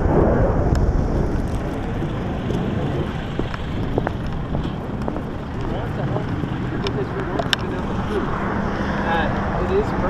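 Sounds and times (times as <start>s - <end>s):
wind buffeting microphone: 0.0s - 10.0s
faint voices: 3.0s - 10.0s.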